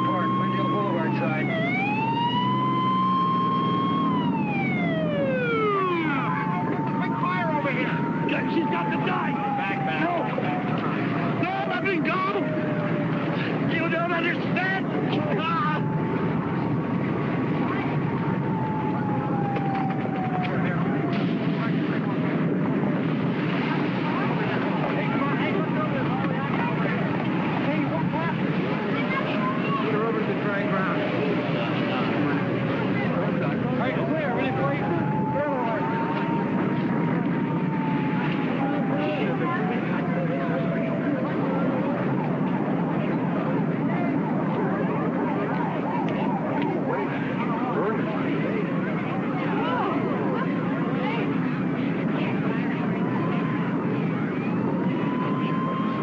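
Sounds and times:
din of voices: 0:00.0 - 0:56.0
siren wailing: 0:00.0 - 0:56.0.

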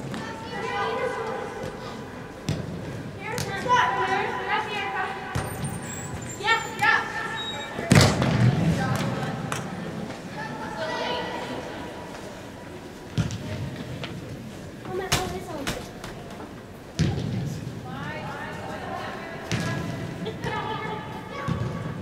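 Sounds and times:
girls shouting in echoing hall: 0:00.0 - 0:02.2.

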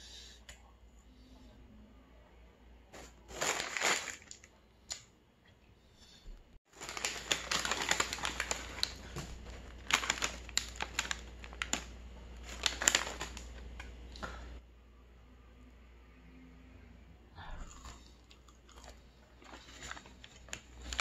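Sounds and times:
paper bag crinkling: 0:03.0 - 0:04.5, 0:06.7 - 0:13.8, 0:19.5 - 0:21.0
wrapper crinkling: 0:03.0 - 0:04.5, 0:06.7 - 0:13.8, 0:19.4 - 0:21.0.

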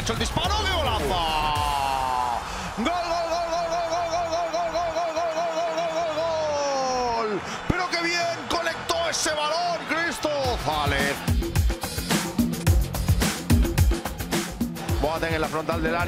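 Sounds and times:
excited shouts: 0:00.4 - 0:11.2
background music with steady beat: 0:08.8 - 0:16.0.

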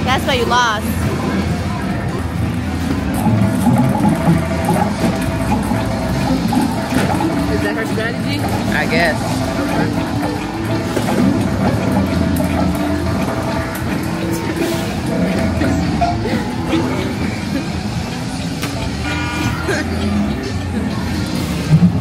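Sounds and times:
arcade background music: 0:00.0 - 0:22.0
crowd chatter: 0:00.0 - 0:22.0
electronic game sounds: 0:00.0 - 0:22.0.

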